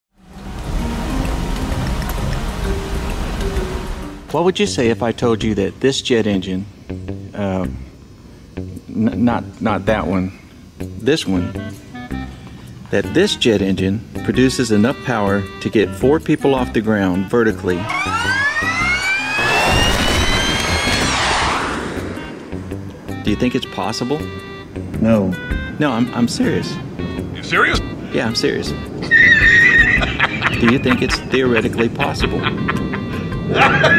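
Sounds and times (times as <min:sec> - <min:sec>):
jet engine whine rising: 0:00.2 - 0:04.3, 0:17.5 - 0:23.5
rush of exhaust noise: 0:00.2 - 0:04.3, 0:17.7 - 0:23.2
sustained low notes: 0:00.2 - 0:04.3, 0:17.5 - 0:23.3
intro music: 0:00.2 - 0:04.4, 0:16.6 - 0:24.5
rain-like hiss: 0:00.2 - 0:15.8, 0:24.7 - 0:31.6.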